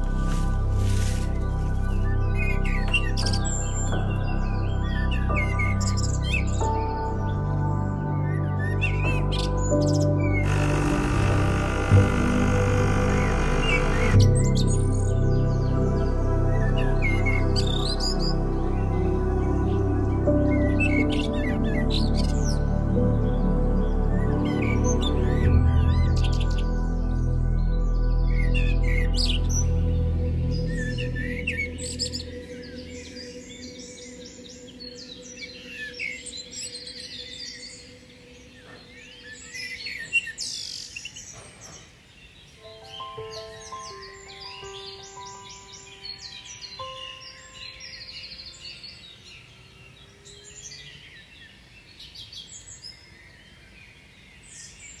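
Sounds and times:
music with sustained chords: 0.0s - 55.0s
songbirds chirping and singing: 0.0s - 55.0s.

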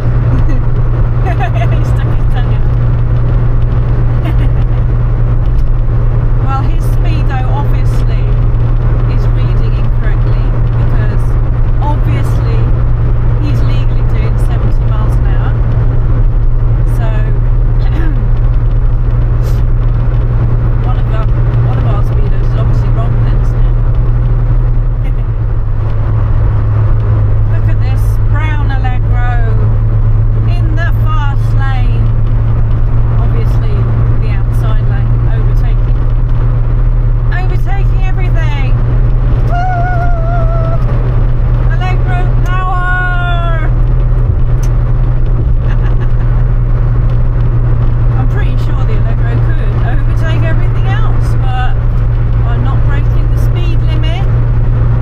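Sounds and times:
car engine and road drone: 0.0s - 55.0s.

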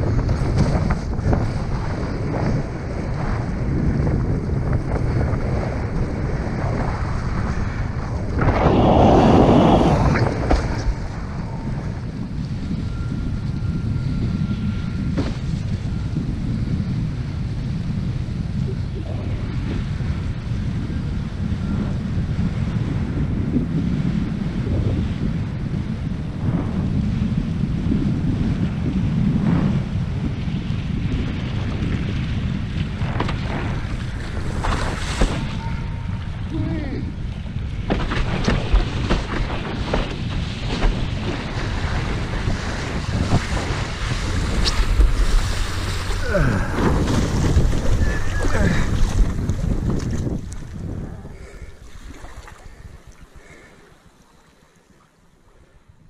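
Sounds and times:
wind buffeting microphone: 0.0s - 54.3s
water splashing against board: 37.9s - 50.8s.

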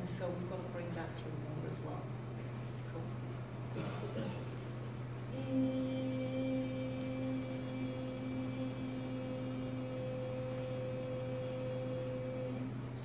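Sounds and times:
low electrical hum: 0.0s - 13.0s
woman singing long note: 5.3s - 13.0s.

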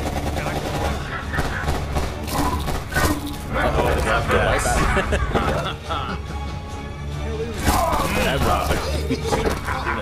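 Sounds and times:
gunshots: 0.0s - 3.5s
people's voices: 7.3s - 10.0s.

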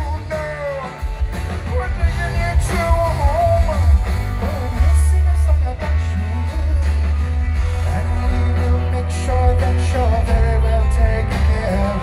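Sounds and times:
live rock band playing: 0.0s - 12.0s
man singing: 0.0s - 12.0s.

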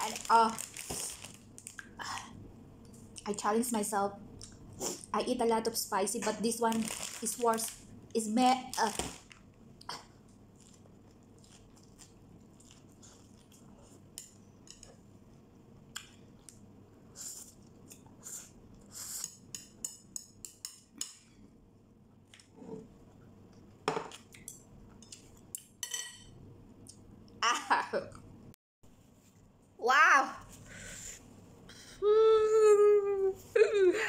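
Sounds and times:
soft chewing: 9.8s - 16.6s.

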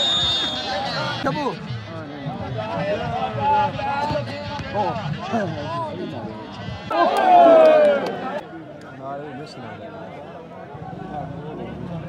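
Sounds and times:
referee's whistle blast: 0.0s - 1.1s
crowd voices: 0.0s - 12.0s.

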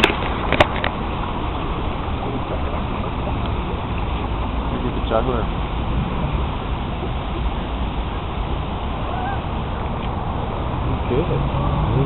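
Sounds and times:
rushing outdoor background noise: 0.0s - 12.0s.

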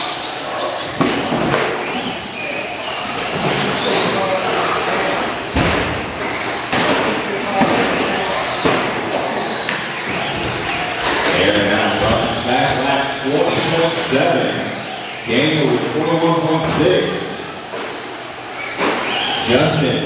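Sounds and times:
rc truck motors whining: 0.0s - 6.8s, 7.4s - 19.5s.

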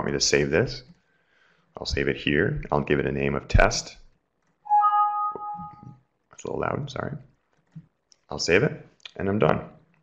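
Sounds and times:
two-note computer alert chime: 4.7s - 5.9s.

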